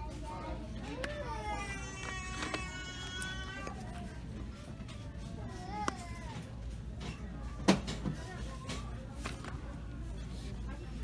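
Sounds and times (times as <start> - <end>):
store background noise: 0.0 - 11.0.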